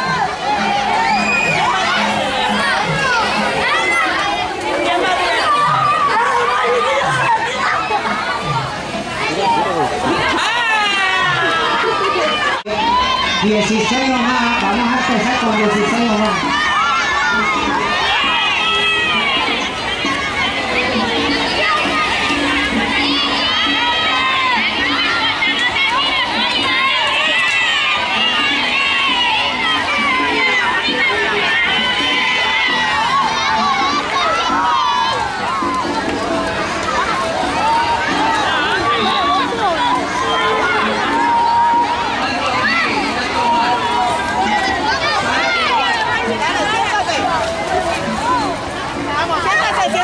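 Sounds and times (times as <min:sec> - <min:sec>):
children cheering: 0:00.0 - 0:50.0
children shouting: 0:00.0 - 0:50.0.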